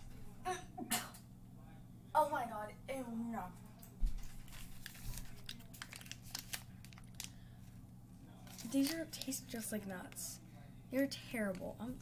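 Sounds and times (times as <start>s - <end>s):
paper snack packet crinkling: 4.2s - 7.6s, 8.4s - 10.4s.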